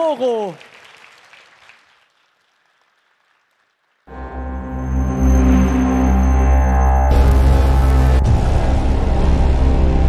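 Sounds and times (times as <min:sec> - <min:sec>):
audience applause: 0:00.0 - 0:04.2.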